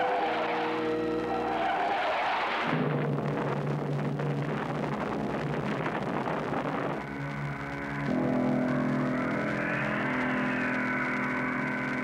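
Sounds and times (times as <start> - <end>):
sustained music chord: 7.2 - 12.0
rushing sound effect: 8.0 - 12.0.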